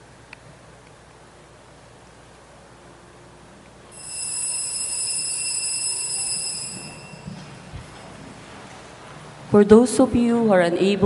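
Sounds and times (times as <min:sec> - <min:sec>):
altar bell ringing: 0:03.9 - 0:08.2.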